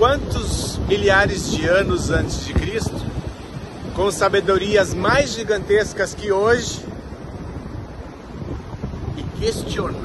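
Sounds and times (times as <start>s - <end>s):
ocean surf breaking: 0.0s - 10.0s
wind rumbling on microphone: 0.0s - 10.0s.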